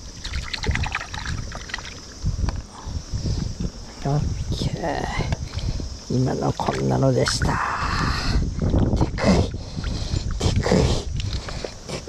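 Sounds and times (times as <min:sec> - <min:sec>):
water splashing in a net: 0:00.0 - 0:02.2, 0:06.5 - 0:07.4.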